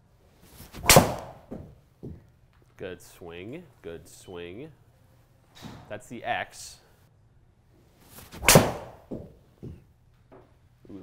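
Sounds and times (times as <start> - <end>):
soft thuds: 0.6 - 2.3, 8.2 - 10.6
golf club striking ball: 8.4 - 9.8.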